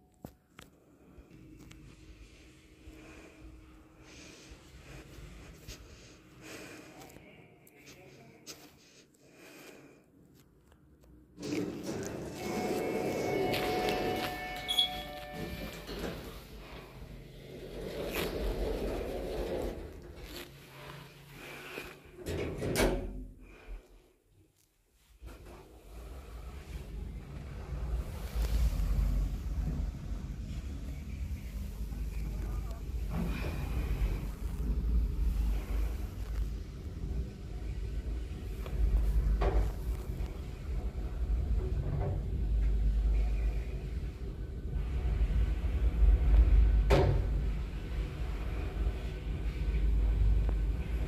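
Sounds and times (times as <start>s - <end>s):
elevator hiss and rumble: 25.3s - 51.0s.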